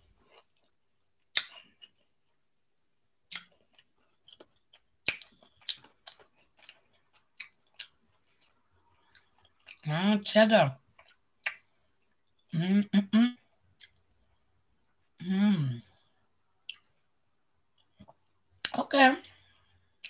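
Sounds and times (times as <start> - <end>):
person chewing crunchy crackers: 0.1 - 2.4, 3.2 - 9.8, 10.8 - 12.5, 13.7 - 14.2, 16.6 - 17.1.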